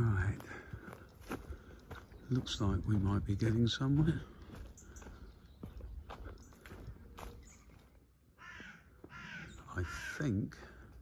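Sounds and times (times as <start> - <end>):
bird harsh calls: 0.0 - 11.0.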